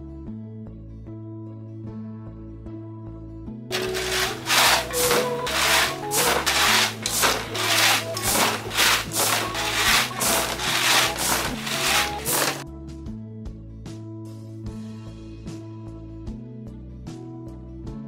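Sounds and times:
rhythmic scraping strokes: 3.7 - 12.6.

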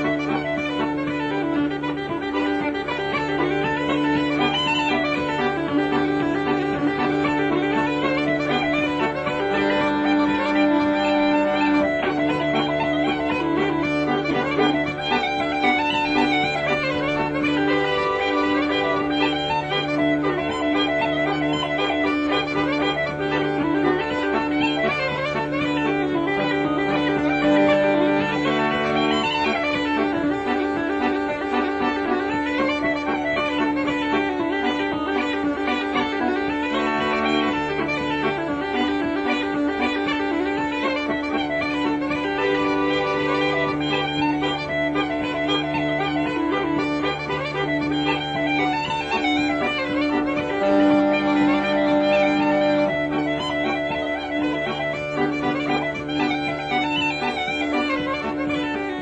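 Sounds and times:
low held regulator chords: 0.0 - 59.0
uilleann pipes playing lively tune: 0.0 - 59.0.

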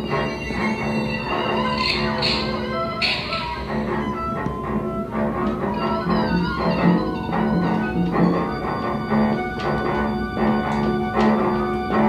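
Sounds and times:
bowed cello: 0.0 - 12.0
double bass sustained tones: 0.0 - 12.0.

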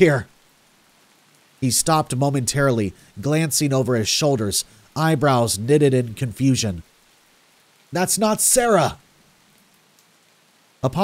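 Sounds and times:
man narrating: 0.0 - 0.3, 1.6 - 6.9, 7.9 - 9.0
faint steady rain: 0.0 - 11.0.

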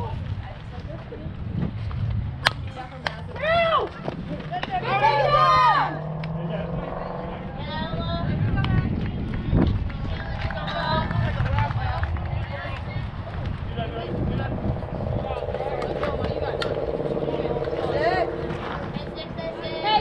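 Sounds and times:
people talking and calling out: 0.0 - 20.0
held calling or chant: 13.9 - 20.0.

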